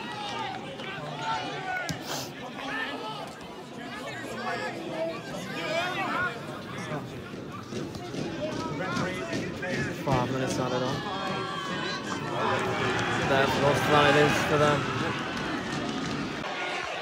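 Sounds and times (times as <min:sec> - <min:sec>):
crowd shouting: 0:10.0 - 0:17.0.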